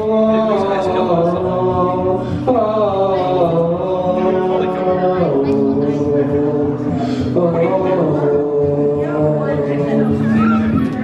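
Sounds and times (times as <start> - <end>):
person singing a held vocal line: 0.0 - 11.0.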